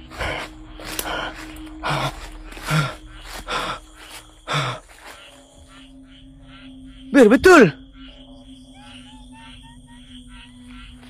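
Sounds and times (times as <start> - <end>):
man gasping for breath: 0.0 - 4.9.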